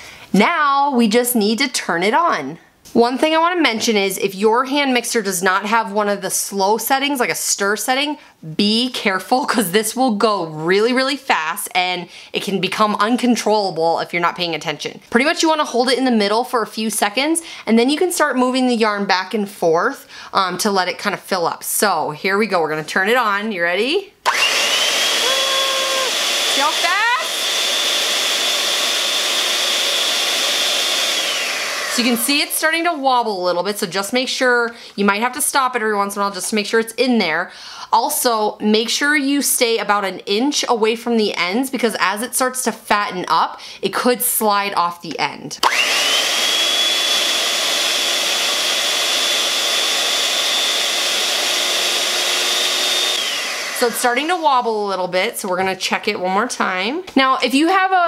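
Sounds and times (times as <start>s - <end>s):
electric hand mixer motor whine: 24.2s - 32.8s, 45.6s - 54.9s.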